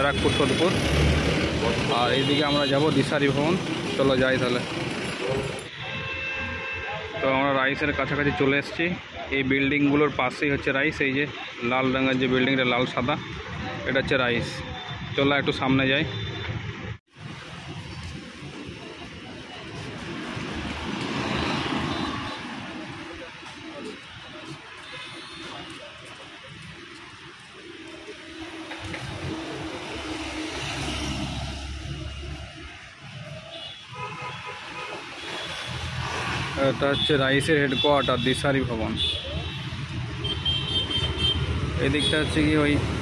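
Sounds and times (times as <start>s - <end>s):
city road traffic rumble: 0.0s - 43.0s
motor vehicle passing: 28.4s - 32.7s.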